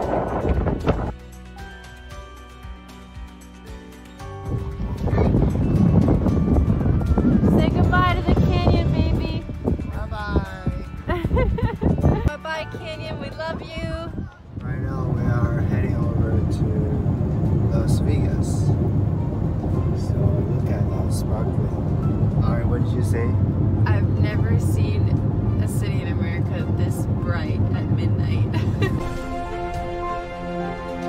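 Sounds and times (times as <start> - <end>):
car road rumble: 0.0 - 1.2, 11.2 - 31.0
music: 0.0 - 31.0.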